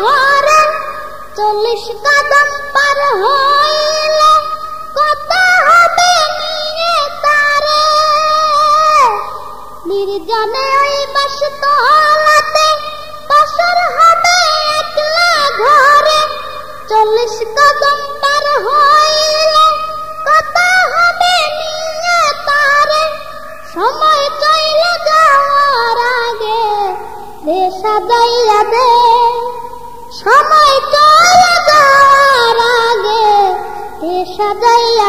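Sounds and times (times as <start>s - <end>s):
solo voice singing unaccompanied: 0.0s - 35.0s.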